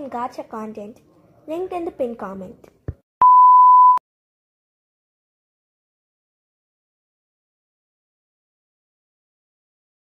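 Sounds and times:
steady electronic test tone beep: 3.2 - 4.0.

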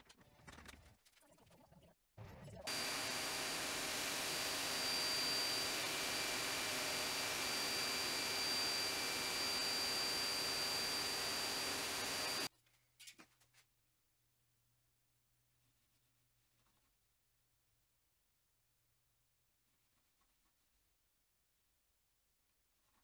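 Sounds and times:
drill press boring into board: 2.7 - 12.5
dust extraction hose rushing: 2.7 - 12.5.

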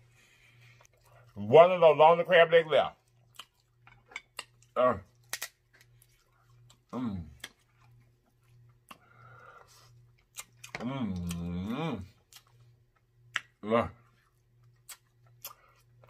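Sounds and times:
person grunting: 6.9 - 7.4, 10.8 - 12.1
person humming: 10.8 - 12.1.

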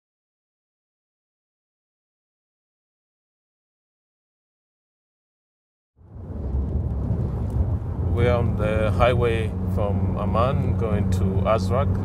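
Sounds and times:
car driving interior rumble: 6.0 - 12.0.

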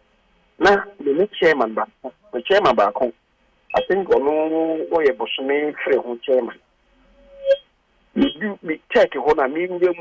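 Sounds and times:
person talking over telephone: 0.6 - 3.2, 3.8 - 6.6, 8.2 - 10.0.

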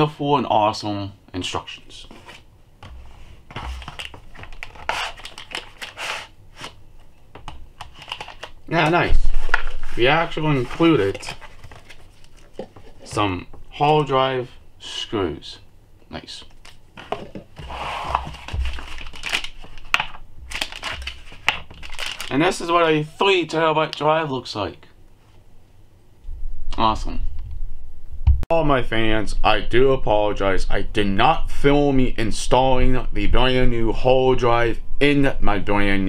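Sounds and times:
cardboard box rustling: 2.2 - 6.7, 9.6 - 13.2, 17.0 - 19.8, 20.5 - 22.3
plastic packaging crinkling: 3.6 - 6.8, 7.8 - 13.0, 18.1 - 22.8.

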